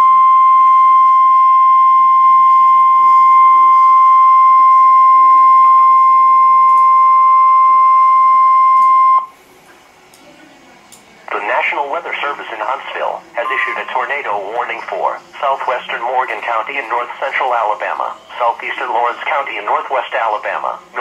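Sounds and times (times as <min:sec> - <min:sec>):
steady alarm tone: 0:00.0 - 0:09.3, 0:13.4 - 0:14.7.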